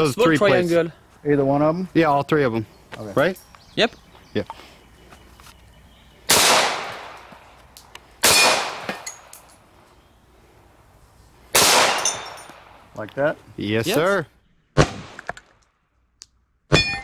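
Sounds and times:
pistol shots: 6.3 - 7.3, 8.2 - 9.3, 11.5 - 12.8.

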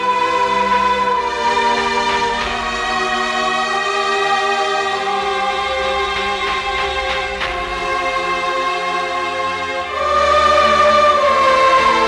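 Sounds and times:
choir holding long notes: 0.0 - 12.0.

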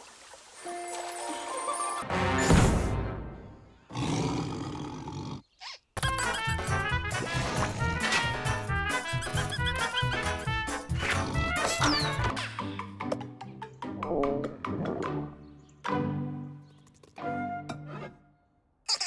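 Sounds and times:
bouncy cartoon music: 6.0 - 18.0.

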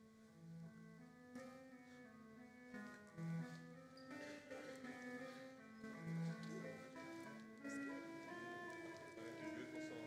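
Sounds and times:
church organ sustained chords: 4.1 - 10.0.

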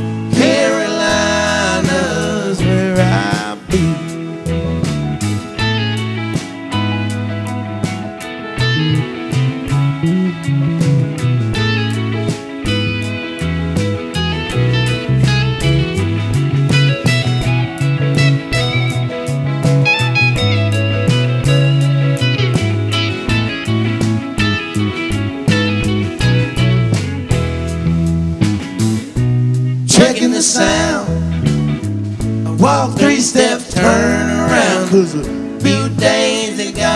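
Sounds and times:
steady drum beat: 0.0 - 7.2, 7.8 - 36.9
electric bass: 0.0 - 36.9
electric guitar lead line: 0.0 - 36.9.

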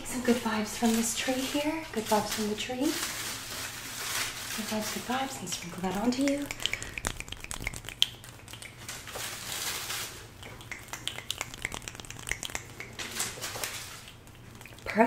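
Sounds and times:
swishing of skin and air: 3.3 - 15.0
fingers fluttering and rubbing: 4.6 - 15.0
finger clicks and snaps: 6.2 - 9.0, 10.4 - 14.9.

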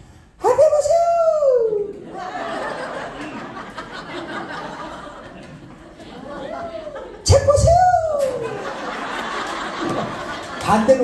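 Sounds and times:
room of people chattering: 0.8 - 11.0.

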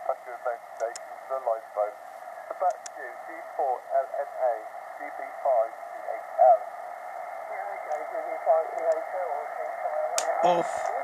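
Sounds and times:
man speaking over radio speaker: 0.0 - 6.7, 7.5 - 11.0
radio band noise: 0.0 - 11.0.

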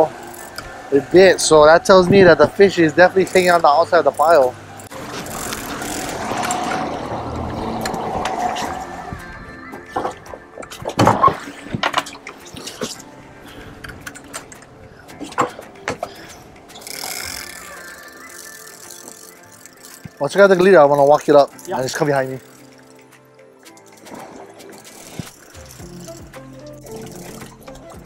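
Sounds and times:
background music: 0.0 - 28.0.

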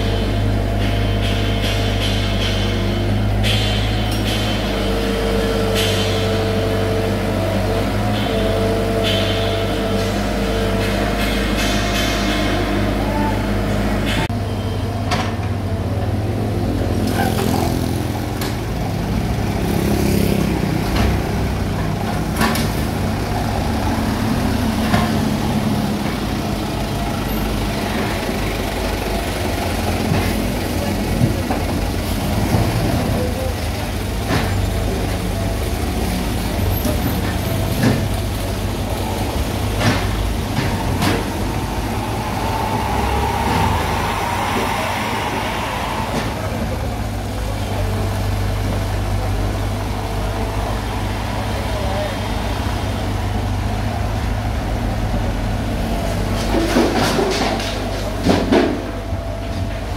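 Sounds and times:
excavator diesel engine under load: 0.0 - 59.9.

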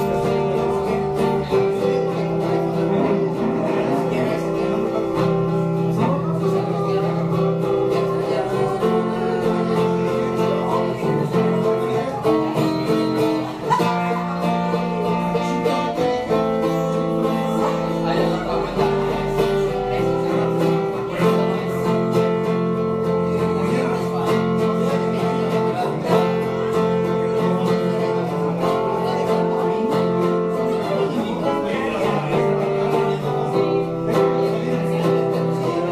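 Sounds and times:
acoustic guitar ballad: 0.0 - 35.9.

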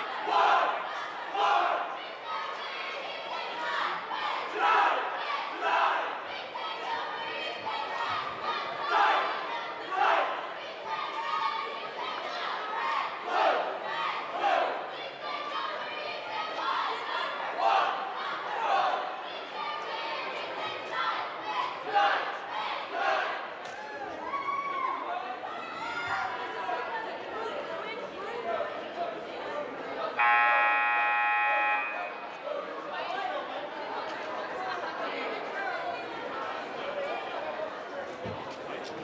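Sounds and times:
cheerleaders shouting in unison: 0.0 - 26.7
crowd noise: 0.0 - 39.0
scoreboard horn blast: 30.2 - 32.3.

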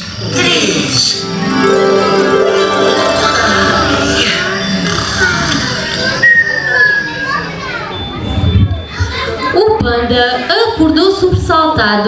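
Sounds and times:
soft music: 1.1 - 6.2
children chattering and calling out: 1.2 - 11.2.

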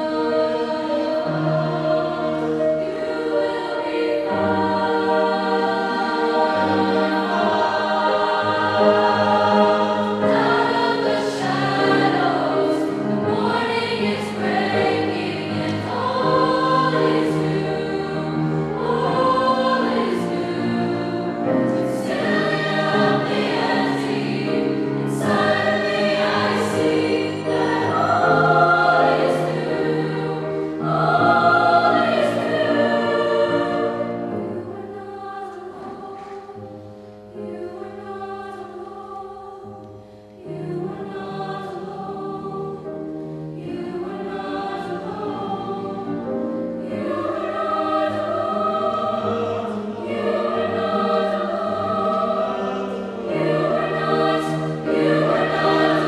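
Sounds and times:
choir singing: 0.0 - 56.0
grand piano accompaniment: 0.0 - 56.0.

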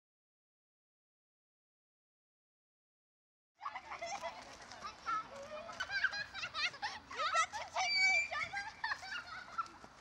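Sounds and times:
children squealing and laughing: 3.6 - 10.0.

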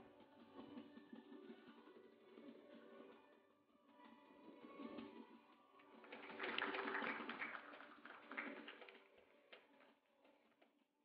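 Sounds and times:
audience applause: 6.0 - 9.0.

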